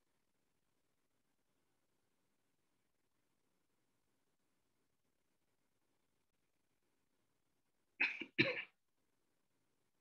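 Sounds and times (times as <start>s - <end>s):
person coughing: 8.0s - 8.8s.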